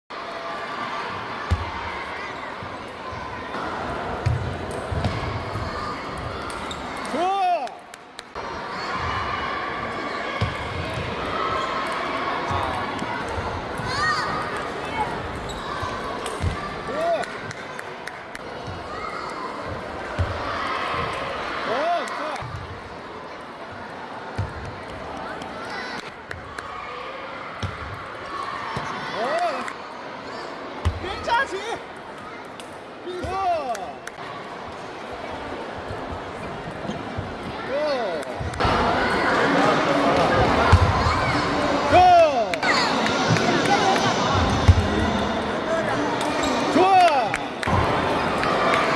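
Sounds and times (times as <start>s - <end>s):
chatter of many people: 0.3s - 48.9s.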